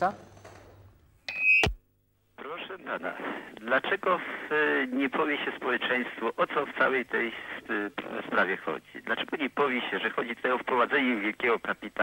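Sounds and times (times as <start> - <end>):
telephone line beep: 1.3 - 1.7.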